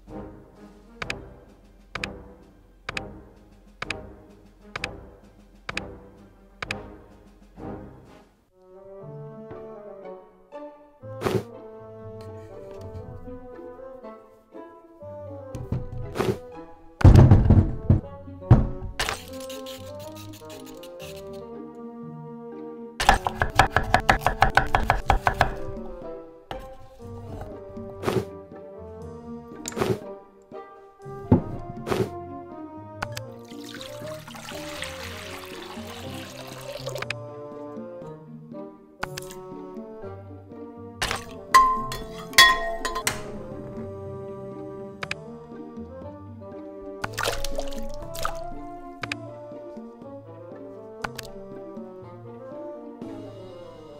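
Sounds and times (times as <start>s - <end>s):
background music: 0.0s - 53.9s
knife chopping on wooden board: 23.0s - 25.8s
potato pieces splashing into water: 33.4s - 37.0s, 47.0s - 48.6s.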